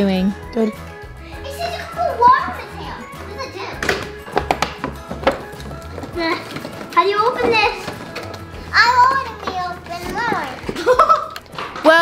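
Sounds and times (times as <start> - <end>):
background music: 0.0 - 12.0
children playing: 1.3 - 12.0.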